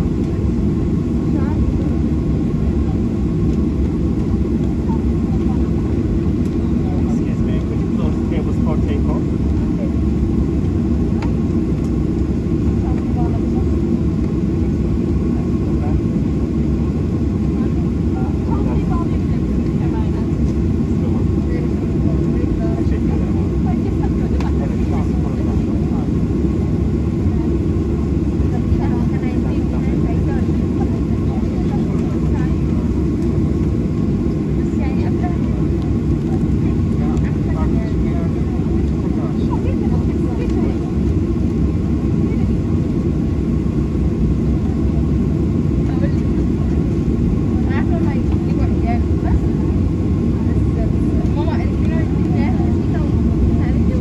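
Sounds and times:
faint passenger voices: 0.0 - 54.0
jet engine cabin rumble: 0.0 - 54.0.

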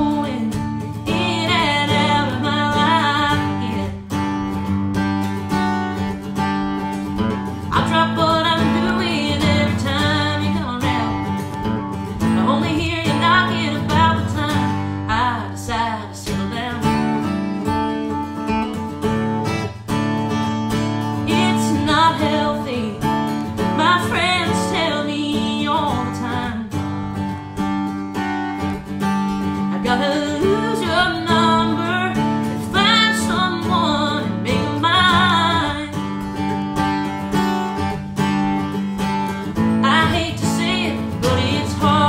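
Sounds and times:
woman singing: 0.0 - 4.7, 7.1 - 17.7, 21.0 - 27.0, 29.4 - 37.1, 39.0 - 42.0
acoustic guitar strumming: 0.0 - 42.0.

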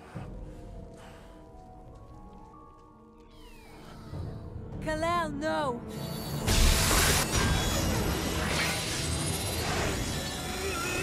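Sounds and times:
quiet film score: 0.0 - 11.0.

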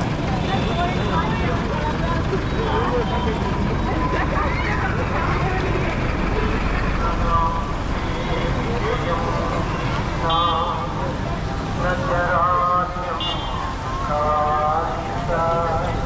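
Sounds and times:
people talking: 0.0 - 16.0
road traffic rumble: 0.0 - 16.0.

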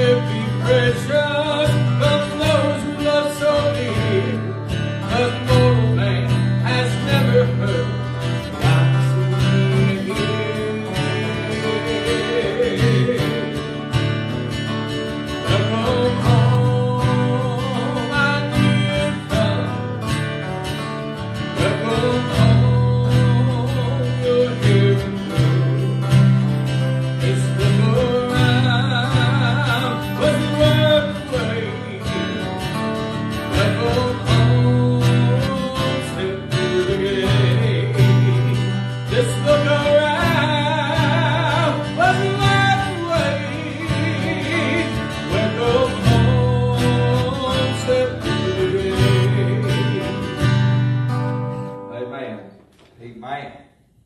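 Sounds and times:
man singing gospel song: 0.0 - 14.0, 15.2 - 20.2, 21.5 - 50.6
acoustic guitars strummed: 0.0 - 52.8.

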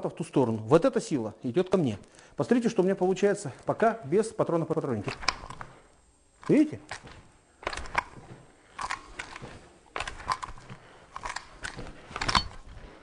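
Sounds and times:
rifle metal parts clattering: 8.8 - 12.8.

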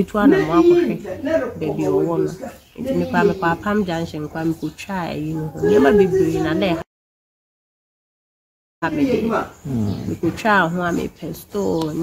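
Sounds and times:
woman speaking: 0.0 - 0.9, 1.6 - 6.9, 10.2 - 12.0.

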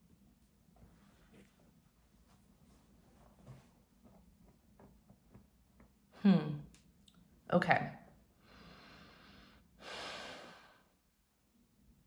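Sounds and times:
person breathing: 8.4 - 11.0.

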